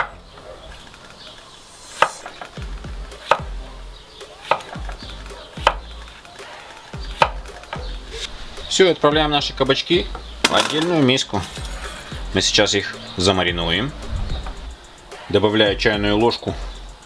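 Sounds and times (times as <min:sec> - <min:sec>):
knife chopping on wooden board: 0:02.0 - 0:03.6, 0:04.3 - 0:08.0.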